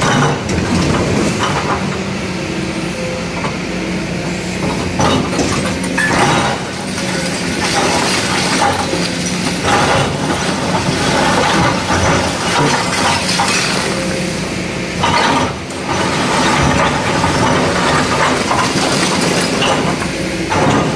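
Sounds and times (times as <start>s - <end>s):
excavator diesel engine running: 0.0s - 20.9s.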